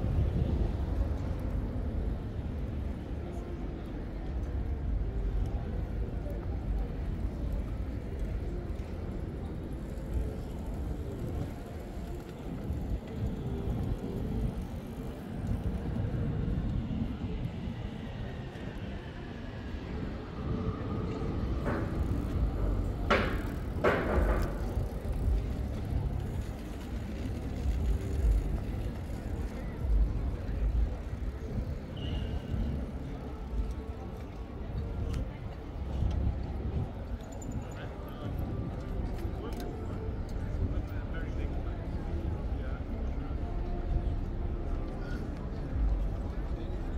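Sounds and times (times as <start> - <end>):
passers-by: 0.0 - 46.9
road traffic rumble: 0.0 - 46.9.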